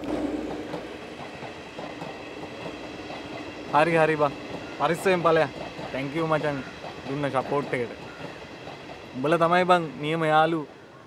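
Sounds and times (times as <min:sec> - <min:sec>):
passenger train running past: 0:00.0 - 0:11.0.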